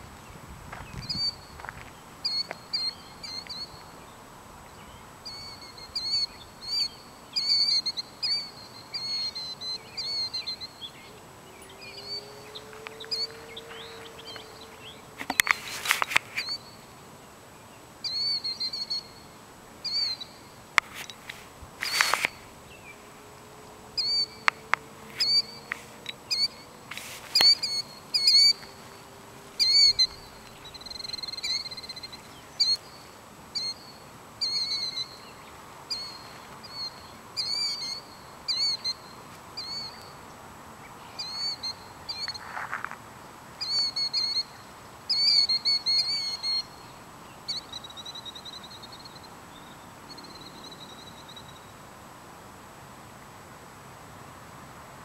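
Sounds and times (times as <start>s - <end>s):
bird calling: 2.2s - 4.2s, 4.8s - 16.9s, 18.0s - 40.3s, 40.9s - 42.5s, 43.6s - 51.7s.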